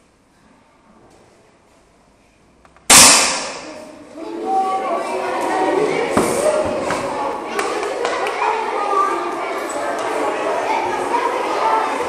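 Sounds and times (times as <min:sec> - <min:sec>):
rifle shot with echo: 0:02.9 - 0:03.8
children's voices: 0:03.6 - 0:12.0.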